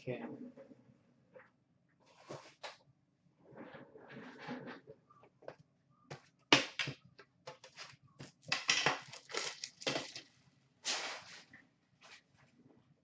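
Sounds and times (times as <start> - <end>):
plastic shrink wrap crinkling: 8.8 - 11.5.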